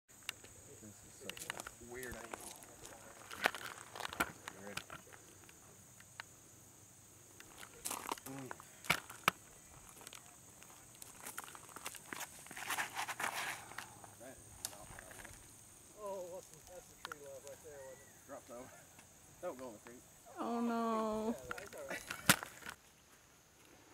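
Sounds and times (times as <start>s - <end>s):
high-pitched insect drone: 0.2s - 22.8s
footsteps on gravel: 1.4s - 4.9s, 7.4s - 14.1s.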